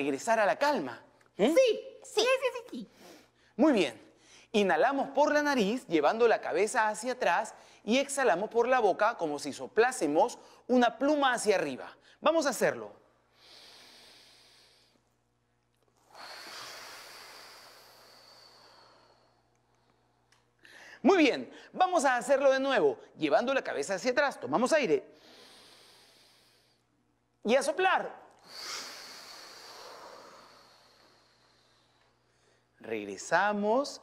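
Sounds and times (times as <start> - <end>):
inhale through the nose: 13.3 - 15.0, 16.0 - 20.0, 25.2 - 26.8, 28.4 - 32.7
exhale through the mouth: 16.0 - 19.9, 28.4 - 32.7.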